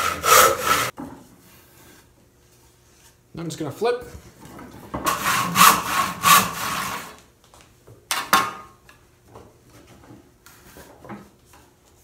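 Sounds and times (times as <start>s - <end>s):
wood rasping against wood: 0.0s - 0.9s, 5.1s - 7.1s.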